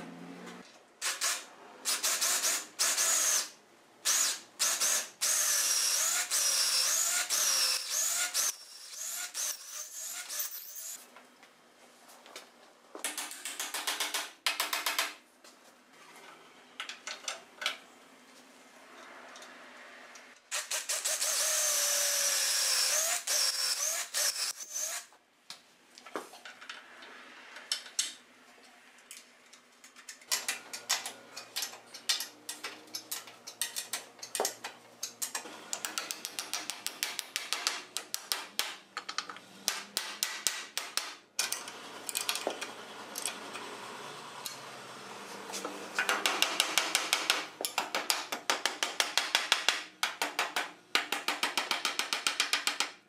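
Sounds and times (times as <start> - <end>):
cordless drill running: 4.1 - 11.0, 20.8 - 25.0
hand tools tapping on iron fittings: 30.2 - 42.4.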